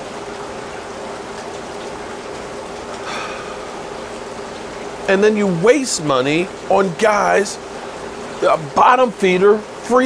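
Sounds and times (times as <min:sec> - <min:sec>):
faint steady hum: 0:00.0 - 0:10.0
pouring rain: 0:00.0 - 0:10.0
short breath: 0:03.0 - 0:03.8.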